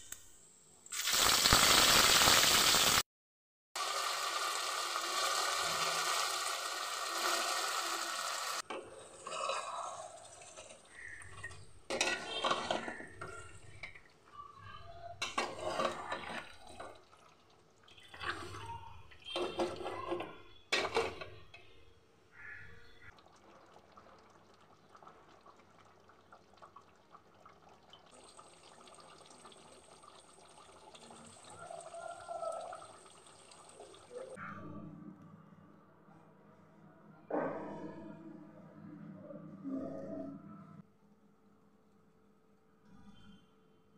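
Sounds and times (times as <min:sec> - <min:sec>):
meat sizzling in a pot: 0:00.9 - 0:03.0, 0:03.8 - 0:08.6
spoon scraping a metal pot: 0:08.6 - 0:14.0, 0:15.2 - 0:16.8.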